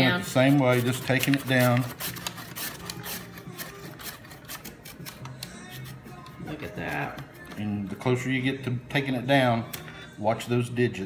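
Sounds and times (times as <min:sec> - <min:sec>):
carrot scraping on mandoline blade: 0:00.7 - 0:07.8.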